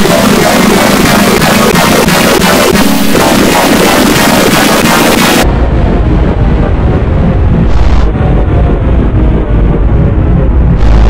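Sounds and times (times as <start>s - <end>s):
distorted low rumble: 0.0s - 11.0s.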